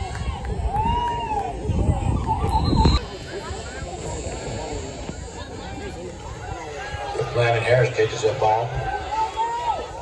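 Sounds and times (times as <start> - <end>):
distant people talking and calling: 0.0 - 10.0
outdoor background noise: 0.0 - 10.0.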